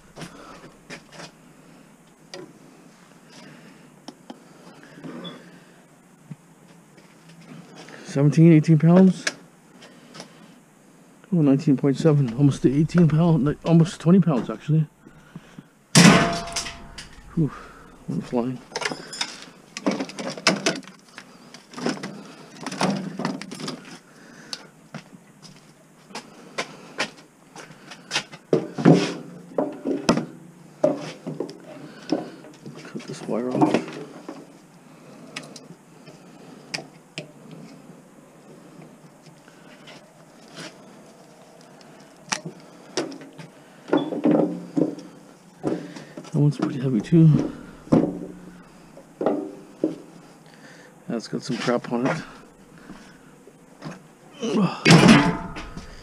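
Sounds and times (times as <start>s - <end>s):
metal knocks and clinks: 16.0s - 18.1s.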